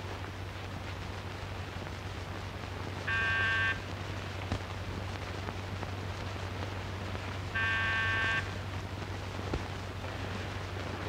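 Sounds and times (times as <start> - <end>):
low film soundtrack hum: 0.0 - 11.0.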